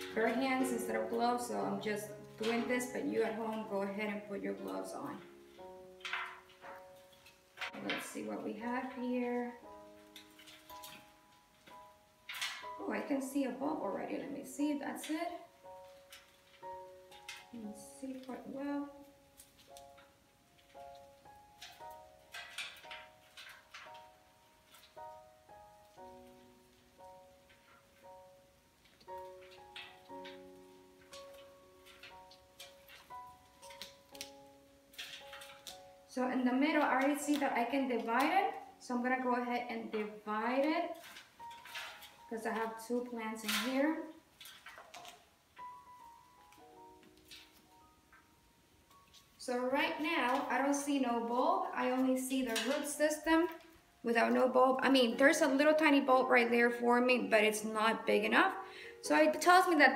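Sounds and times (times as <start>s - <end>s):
soil crackling and rustling: 0.0s - 56.5s
soft keyboard music: 0.0s - 59.9s
roots crackling in soil: 40.0s - 55.9s.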